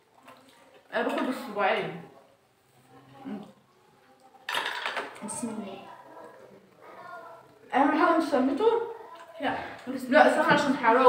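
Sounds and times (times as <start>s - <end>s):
cutlery clatter: 4.5s - 5.5s.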